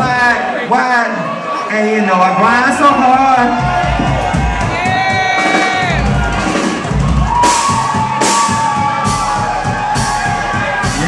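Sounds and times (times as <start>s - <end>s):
crowd cheering and shouting: 0.0s - 11.0s
live hip-hop music: 2.5s - 11.0s.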